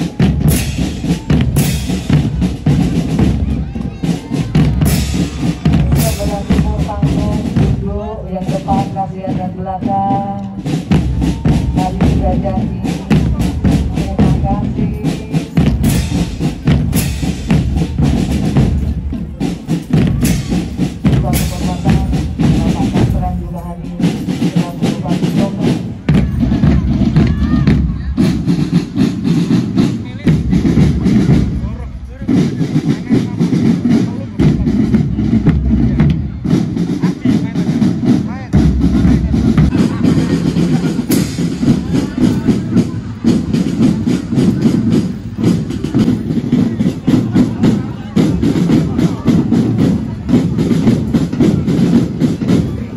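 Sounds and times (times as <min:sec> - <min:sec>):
bass drums: 0:00.0 - 0:52.9
cymbals: 0:00.0 - 0:52.9
snare drums: 0:00.0 - 0:52.9.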